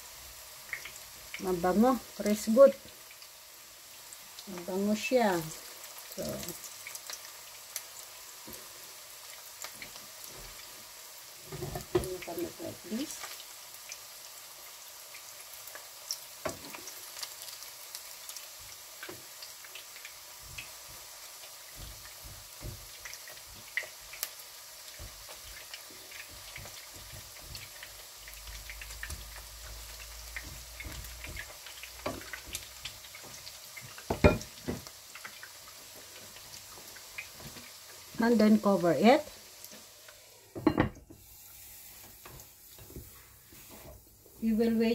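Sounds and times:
meat sizzling in oil: 0:00.0 - 0:44.9
oil popping and crackling: 0:00.6 - 0:01.4, 0:05.4 - 0:08.7, 0:15.1 - 0:38.3.

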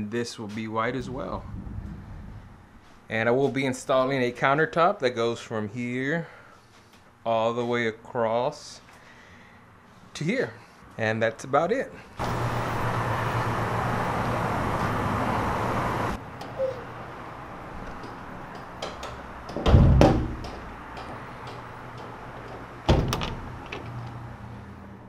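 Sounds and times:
rushing noise: 0:00.9 - 0:03.1
metal door bang: 0:19.0 - 0:24.0.

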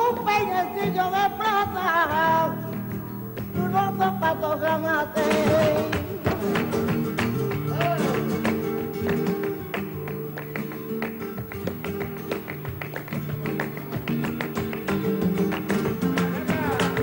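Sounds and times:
flamenco acoustic guitar: 0:00.0 - 0:17.0
sharp hand claps: 0:05.2 - 0:17.0.

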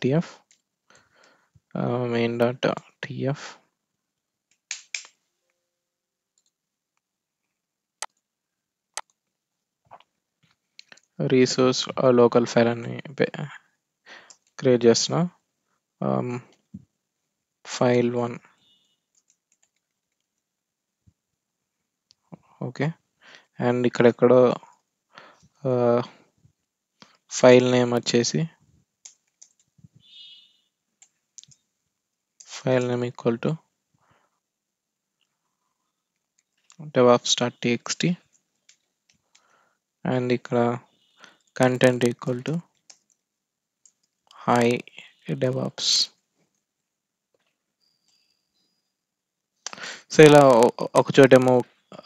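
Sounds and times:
keyboard and mouse clicks: 0:04.4 - 0:05.2, 0:08.9 - 0:11.1, 0:19.1 - 0:20.4, 0:29.0 - 0:29.8, 0:38.3 - 0:39.5, 0:41.4 - 0:44.7.

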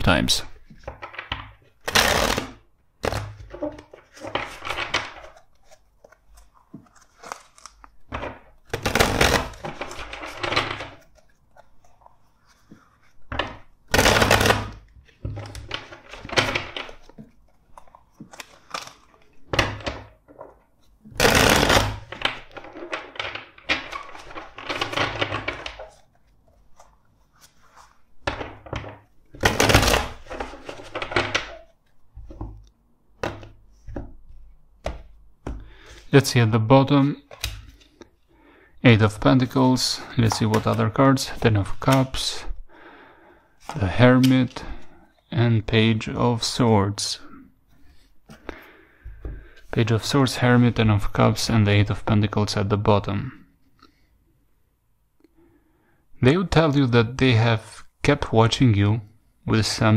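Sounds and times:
cards shuffling: 0:00.6 - 0:36.2, 0:39.1 - 0:42.2.

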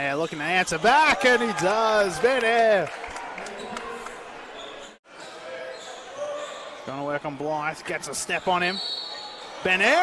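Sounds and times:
echoing indoor stadium noise: 0:00.0 - 0:10.0.

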